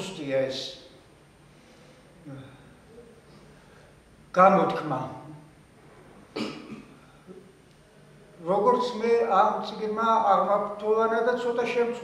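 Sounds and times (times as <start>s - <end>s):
faint breath: 1.4s - 4.1s
man coughing: 6.4s - 7.0s.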